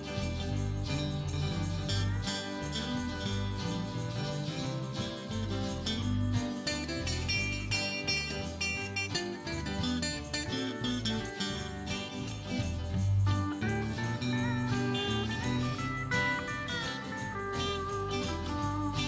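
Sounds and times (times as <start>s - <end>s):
country gospel band instrumental: 0.0s - 19.0s
electric guitar lead line: 0.0s - 19.0s.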